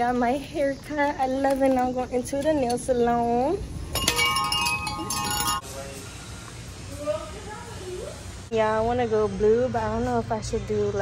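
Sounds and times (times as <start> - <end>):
shop door chime ringing: 4.0 - 5.6.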